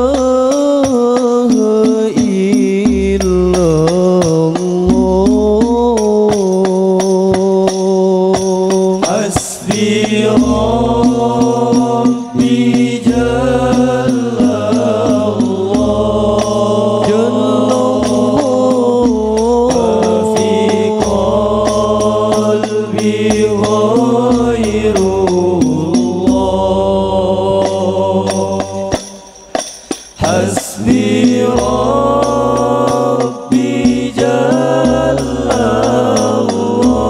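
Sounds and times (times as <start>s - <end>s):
men singing long sliding notes: 0.0s - 37.0s.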